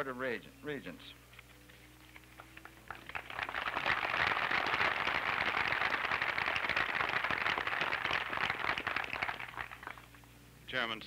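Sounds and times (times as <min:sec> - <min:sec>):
audience applauding: 0:02.2 - 0:10.2.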